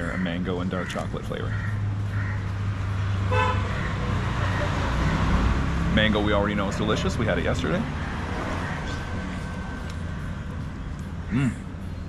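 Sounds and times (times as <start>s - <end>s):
low hum of road traffic: 0.0s - 12.0s
vehicle horn toot: 3.3s - 3.7s.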